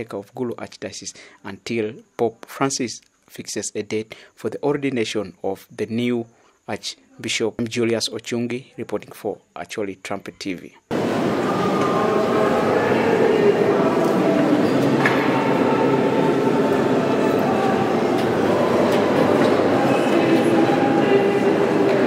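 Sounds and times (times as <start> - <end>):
choir singing: 10.9 - 22.0.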